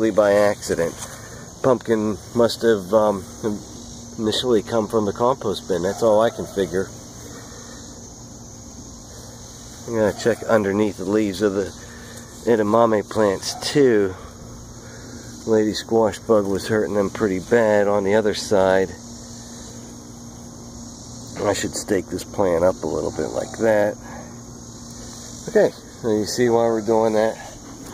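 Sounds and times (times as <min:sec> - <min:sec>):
faint constant hum: 0:00.0 - 0:27.9
insects chirring: 0:00.0 - 0:27.9
low hiss: 0:00.0 - 0:27.9.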